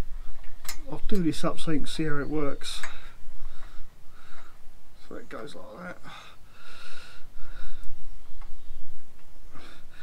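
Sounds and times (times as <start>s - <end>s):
man breathing: 2.8s - 4.8s, 6.0s - 8.2s, 9.4s - 10.0s.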